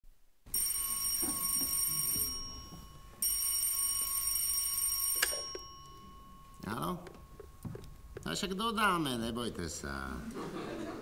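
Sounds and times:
telephone ringing: 0.5 - 8.2.

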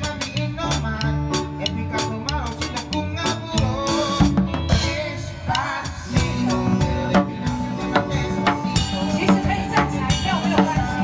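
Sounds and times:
band playing: 0.0 - 11.0
drum kit: 0.0 - 11.0.

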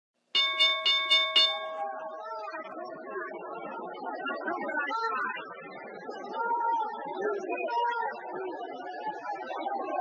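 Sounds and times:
bell ringing: 0.4 - 2.3.

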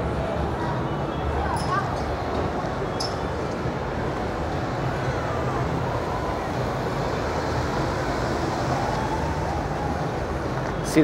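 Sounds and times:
crowd chatter: 0.0 - 7.0.

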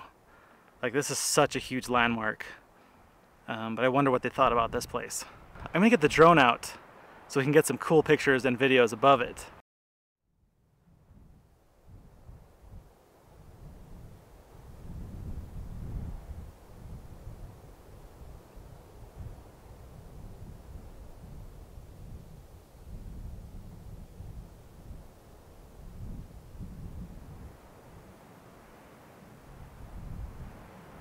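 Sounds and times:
wind buffeting microphone: 4.4 - 6.3, 10.8 - 31.0.

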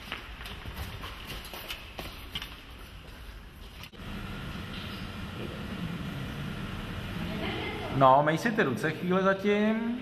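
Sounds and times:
low background hum: 2.6 - 10.0.

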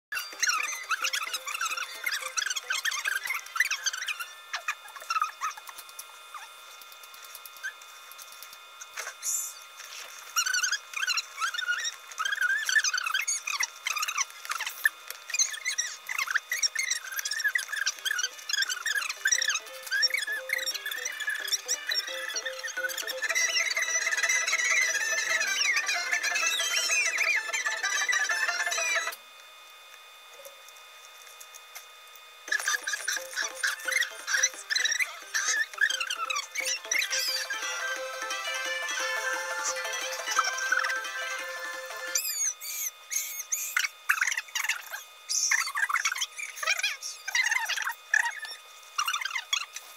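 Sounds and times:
squeaky fast-forwarded soundtrack: 0.1 - 6.5, 10.4 - 29.2, 32.5 - 49.8.

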